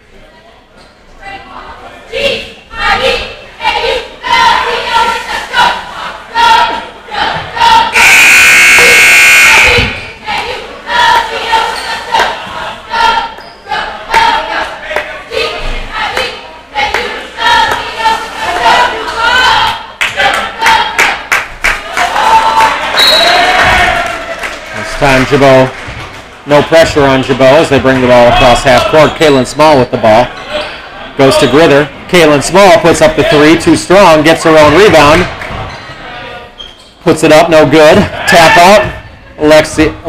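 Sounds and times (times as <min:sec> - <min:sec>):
crowd voices and shouts: 0:00.0 - 0:40.0
scoreboard horn: 0:07.9 - 0:09.8.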